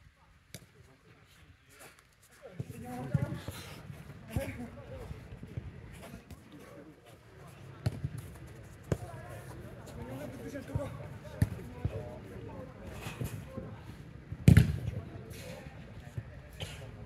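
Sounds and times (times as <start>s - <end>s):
players' voices: 0.2s - 17.0s
football kick thuds: 14.3s - 15.0s.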